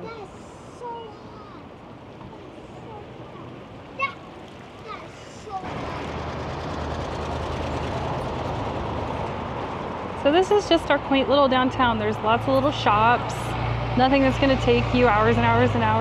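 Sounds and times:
cars passing: 0.0 - 16.0
street traffic noise: 0.0 - 16.0.

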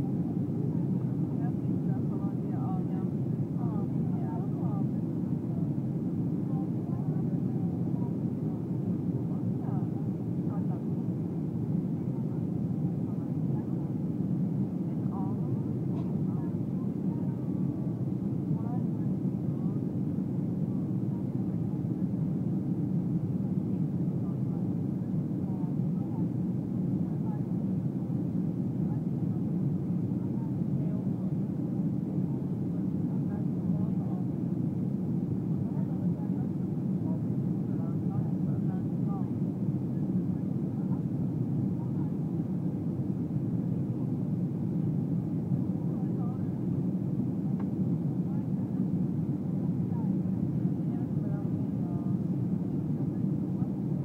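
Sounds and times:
airplane cabin engine noise: 0.0 - 54.0
faint passenger voices: 0.0 - 54.0.

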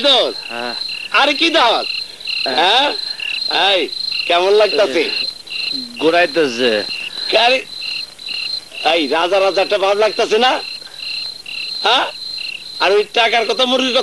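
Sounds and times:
crickets chirping: 0.0 - 14.0.

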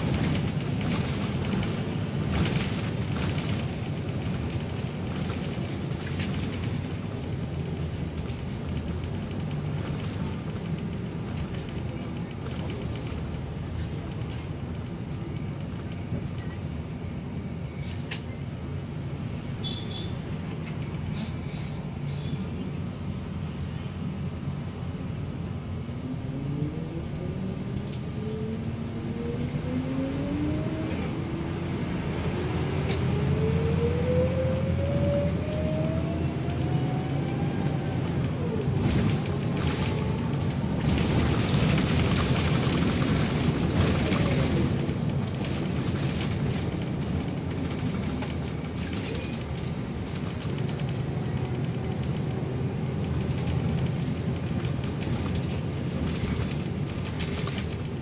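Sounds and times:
bus engine rumble: 0.0 - 58.0.

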